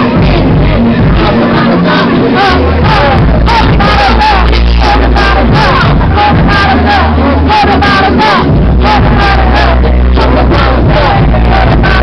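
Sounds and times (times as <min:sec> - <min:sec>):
crowd voices: 0:00.0 - 0:12.0
heavy hip-hop bass beat: 0:00.0 - 0:12.0
woman rapping into microphone: 0:00.0 - 0:12.0.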